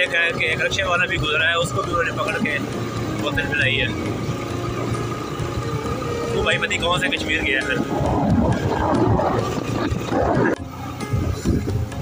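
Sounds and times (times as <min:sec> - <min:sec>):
motorcycle engine: 0:00.0 - 0:12.0
wind rushing over microphone: 0:05.8 - 0:12.0.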